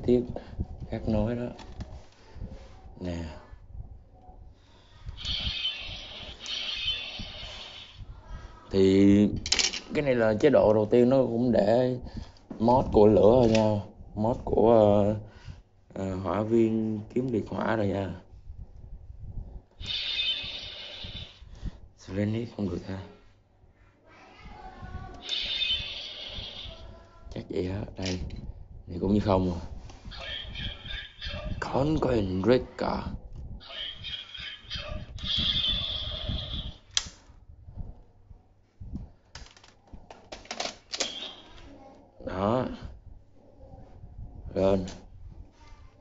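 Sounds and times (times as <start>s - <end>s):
toy sword electronic hissing burst: 5.2s - 8.0s, 19.8s - 21.4s, 25.2s - 26.8s.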